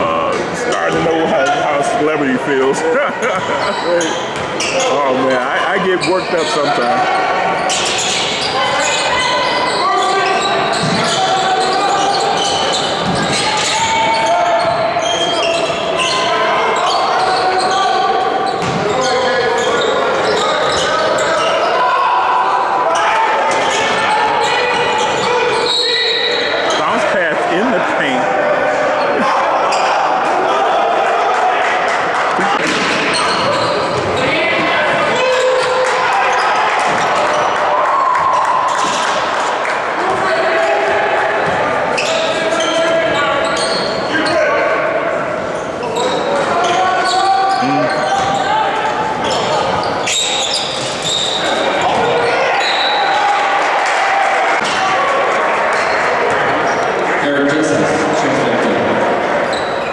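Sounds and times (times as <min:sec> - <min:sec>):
people talking and shouting: 0:00.0 - 0:59.9.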